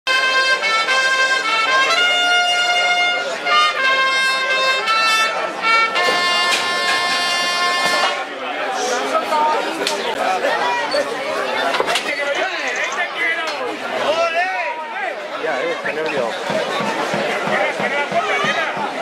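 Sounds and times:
brass band playing: 0.1 - 8.4
crowd chatter: 0.1 - 19.0.

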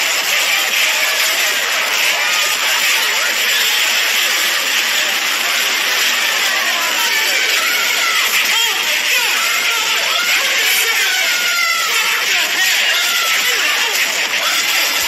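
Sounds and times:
yelps and shouts: 0.0 - 15.0.

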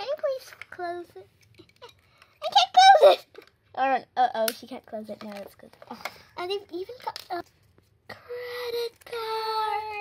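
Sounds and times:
child's high-pitched voice: 0.0 - 1.3, 2.4 - 7.5, 8.1 - 10.0.

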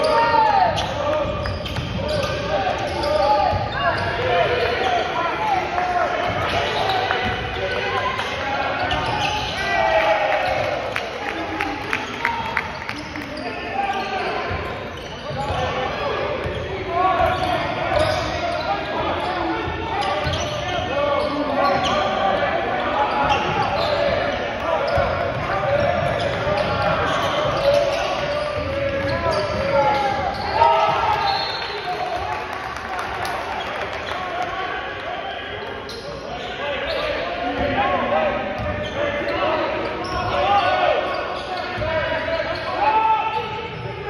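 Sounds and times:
echoing voices: 0.0 - 44.0.

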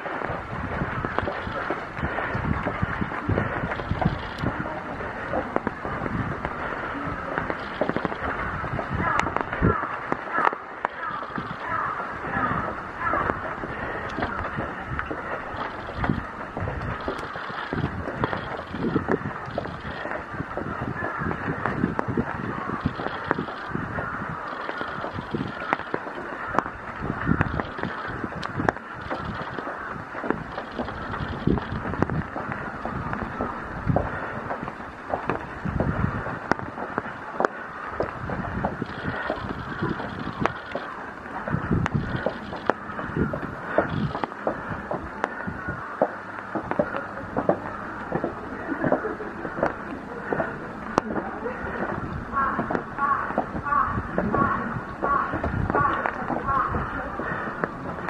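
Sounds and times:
footsteps on wet stone: 0.0 - 58.0.

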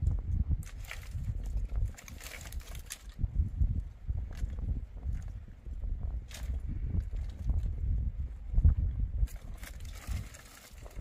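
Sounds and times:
steady low rumble: 0.0 - 11.0
sticks clattering and scraping: 0.6 - 3.2.

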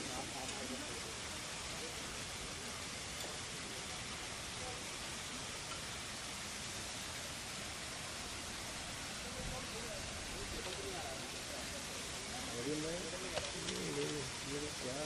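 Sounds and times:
faint voices: 0.0 - 15.0
steady hiss: 0.0 - 15.0.

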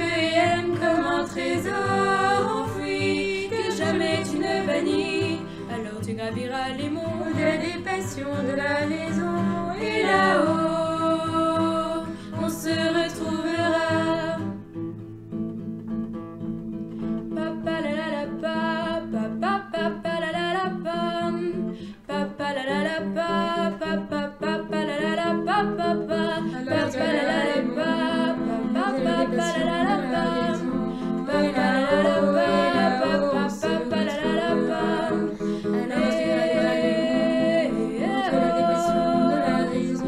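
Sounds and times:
person singing: 0.0 - 14.6, 17.4 - 40.0
guitar accompaniment: 0.0 - 40.0.

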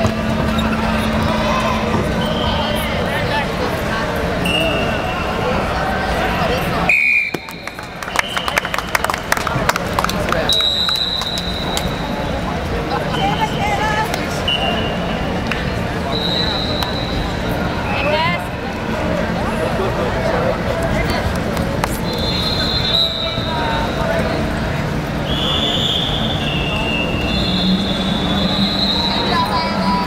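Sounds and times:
many voices talking: 0.0 - 30.0
referee whistle blasts: 4.4 - 5.1, 6.9 - 8.8, 14.5 - 15.1, 16.1 - 17.3, 22.1 - 23.7, 25.2 - 29.5.

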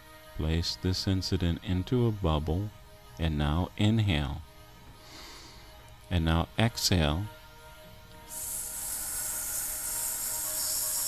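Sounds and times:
meditation music drone: 0.0 - 11.0
steady airy hiss: 7.4 - 11.0.

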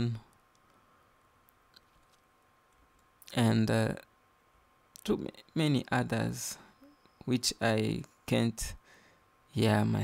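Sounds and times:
person speaking: 0.0 - 0.3, 5.0 - 8.8.

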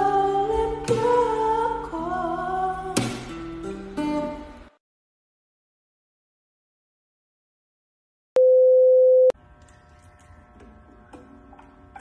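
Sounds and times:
electronic beep: 8.4 - 9.3.

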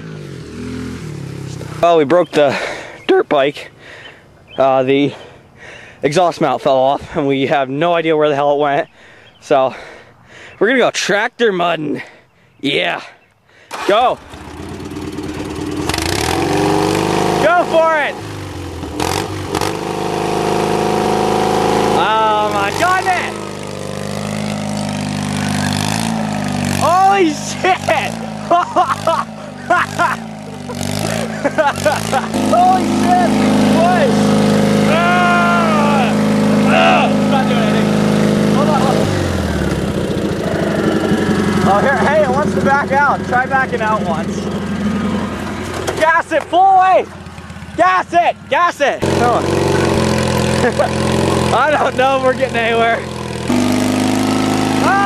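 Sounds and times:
small tractor engine running: 13.6 - 55.0
person shouting: 26.8 - 28.2, 32.2 - 34.2, 34.8 - 37.8, 54.8 - 55.0.

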